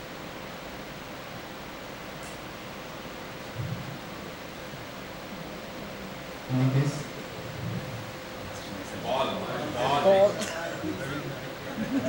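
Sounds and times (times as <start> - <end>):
faint hum: 0.0 - 12.0
room noise hiss: 0.0 - 12.0
low murmur of a voice: 5.2 - 12.0.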